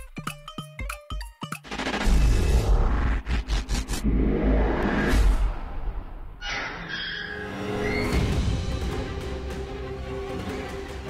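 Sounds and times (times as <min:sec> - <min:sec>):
whooshing hits: 0:01.9 - 0:06.4
deep rumble: 0:02.0 - 0:06.4.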